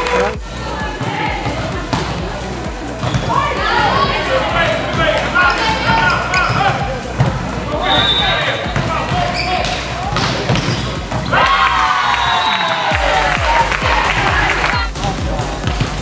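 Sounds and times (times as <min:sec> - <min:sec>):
volleyball struck with dull thuds: 0:00.0 - 0:11.6
players shouting calls: 0:00.0 - 0:16.0
shouting and cheering: 0:00.0 - 0:16.0.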